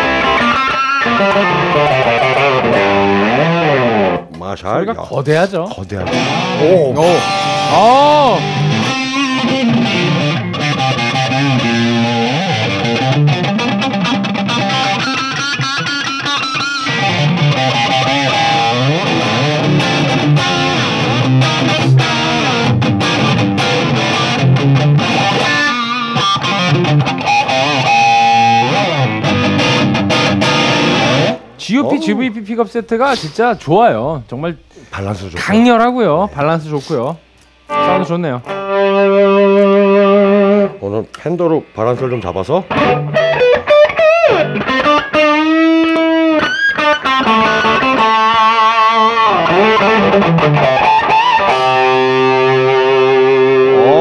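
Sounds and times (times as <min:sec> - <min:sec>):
distorted electric guitar lead: 0:00.0 - 0:04.4, 0:05.9 - 0:32.4, 0:37.7 - 0:54.0.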